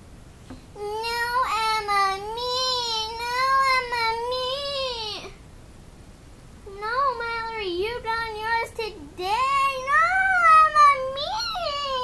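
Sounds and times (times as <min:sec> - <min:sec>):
child's sing-song voice: 0:00.8 - 0:05.4, 0:06.7 - 0:12.0.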